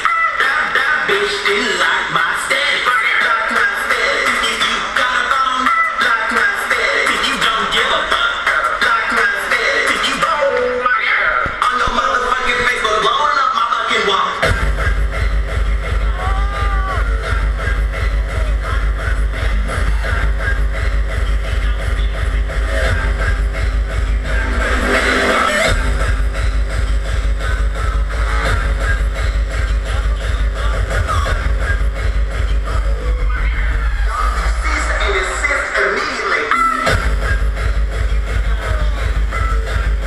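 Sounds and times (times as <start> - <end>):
hardcore techno over sound system: 0.0 - 40.0.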